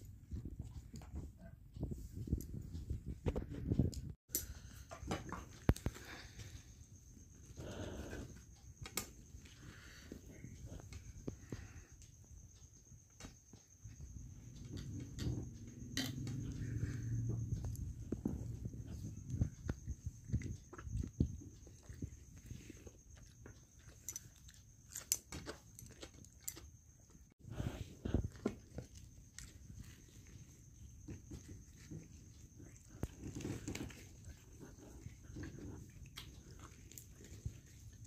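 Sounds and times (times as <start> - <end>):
chewing and wet mouth sounds: 15.8 - 27.4, 28.2 - 38.0.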